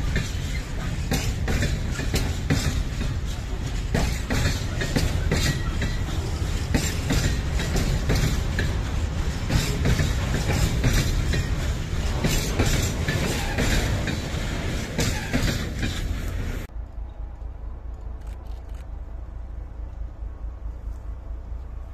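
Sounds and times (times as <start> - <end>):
freight train wheels clattering: 0.0 - 17.4.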